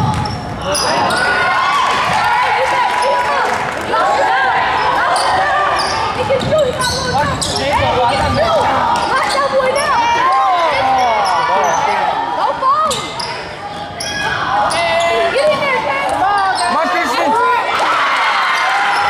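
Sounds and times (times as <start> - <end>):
basketball bouncing: 0.0 - 0.6, 6.3 - 7.5
sneaker squeaks on hardwood: 0.0 - 1.3, 5.2 - 7.9.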